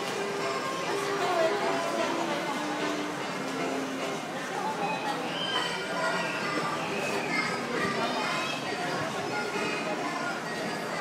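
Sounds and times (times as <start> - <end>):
children's and adults' voices: 0.0 - 11.0.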